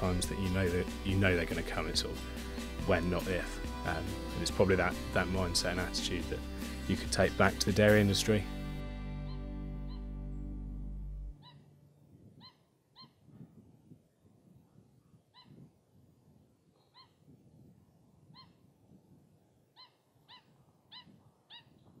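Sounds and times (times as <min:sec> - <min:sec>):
background music: 0:00.0 - 0:12.0
short rising animal calls: 0:09.2 - 0:10.2.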